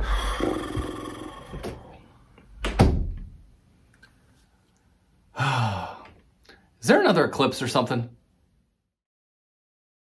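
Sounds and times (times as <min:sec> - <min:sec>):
door thump: 0:02.6 - 0:03.4.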